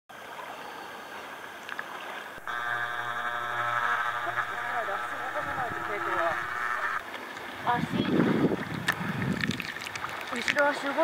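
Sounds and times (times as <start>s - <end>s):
water lapping and sloshing: 0.2s - 2.4s, 7.0s - 11.0s
steady multi-pitched hum: 2.4s - 7.0s.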